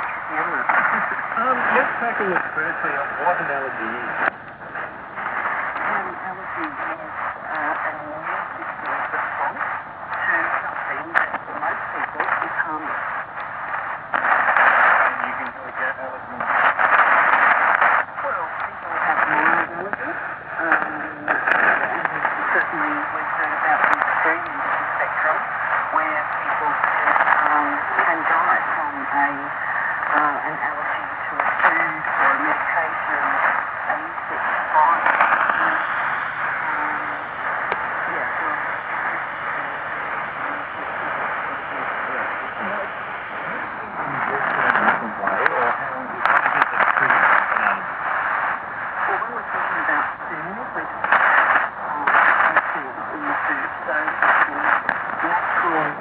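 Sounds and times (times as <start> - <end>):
faint radio talk: 0.0 - 56.0
radio hiss and crackle: 0.0 - 56.0.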